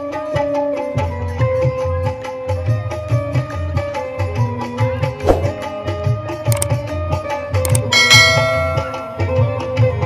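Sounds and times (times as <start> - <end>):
bell ringing: 7.7 - 9.4.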